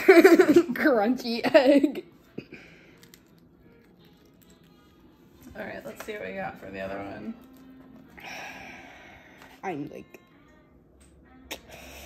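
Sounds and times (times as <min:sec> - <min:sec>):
eggshell crackling: 0:02.9 - 0:05.1.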